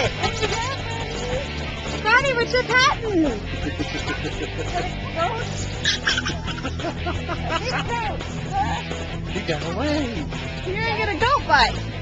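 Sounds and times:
people's voices: 0.0s - 11.8s.

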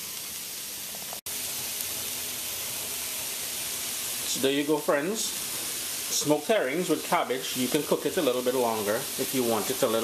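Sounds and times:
food sizzling in a pan: 0.0s - 10.0s.

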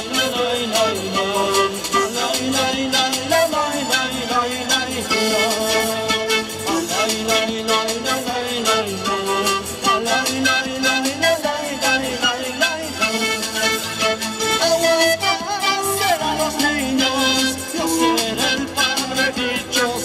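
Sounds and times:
panpipe melody: 0.0s - 20.0s
percussion steady beat: 0.0s - 20.0s.

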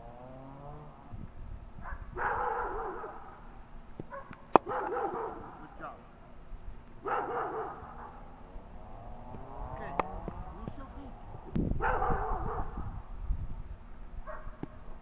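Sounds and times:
cricket bat striking ball: 4.0s - 5.0s.

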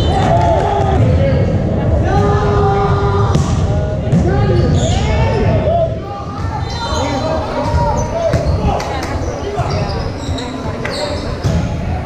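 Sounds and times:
players calling out: 0.0s - 12.0s
sneaker squeaks: 6.4s - 11.8s.

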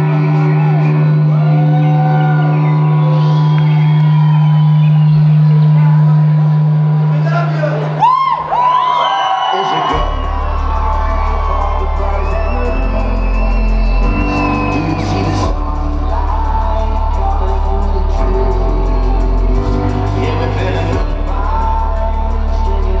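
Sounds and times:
sustained synth notes: 0.0s - 8.0s, 9.9s - 23.0s
electronic beat: 0.0s - 8.9s, 9.7s - 23.0s
deep bass line: 0.0s - 23.0s.

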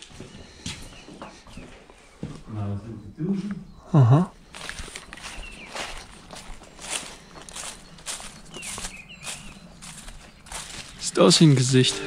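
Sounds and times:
footsteps on leaves and debris: 4.4s - 12.0s.

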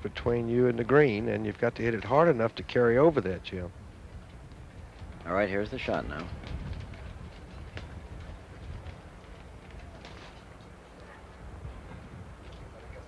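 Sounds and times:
low hum and hiss: 0.0s - 13.0s.

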